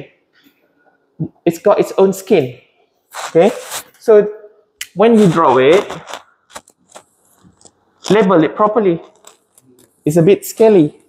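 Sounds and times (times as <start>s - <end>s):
marker scratching on whiteboard: 3.1s - 4.0s, 5.0s - 8.2s.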